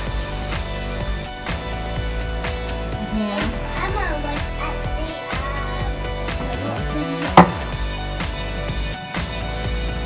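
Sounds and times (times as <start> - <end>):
background music with beat: 0.0 - 10.0.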